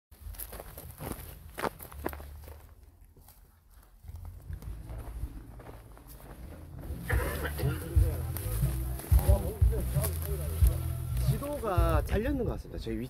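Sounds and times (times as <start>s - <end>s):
footsteps on dirt path: 0.1s - 12.2s.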